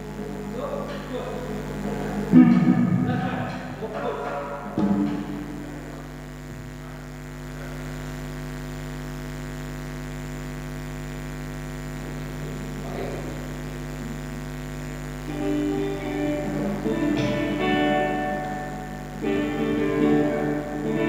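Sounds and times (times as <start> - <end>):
amplifier mains hum: 0.0 - 21.0.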